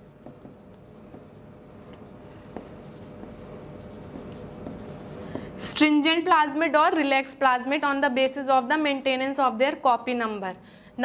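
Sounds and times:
background hum: 0.0 - 11.0
marker pen squeaking on whiteboard: 0.2 - 5.7.

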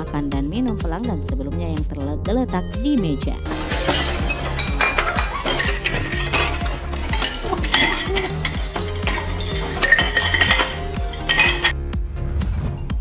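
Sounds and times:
background music: 0.0 - 13.0
plates and cutlery clattering: 3.5 - 11.8.

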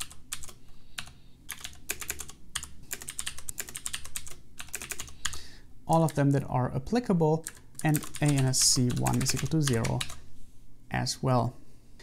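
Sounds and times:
typing on keyboard: 0.0 - 6.2, 7.4 - 10.2.

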